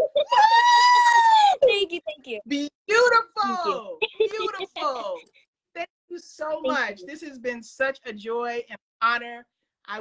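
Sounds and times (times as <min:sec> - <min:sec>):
woman cheering whoop: 0:00.3 - 0:01.6.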